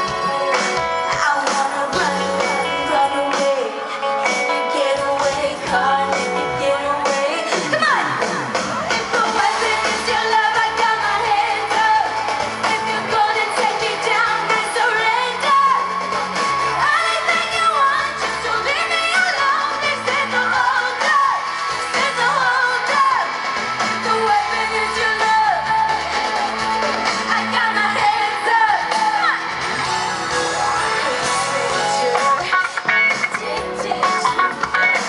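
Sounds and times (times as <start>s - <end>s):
live band playing: 0.0s - 35.0s
woman singing lead vocal: 0.0s - 35.0s.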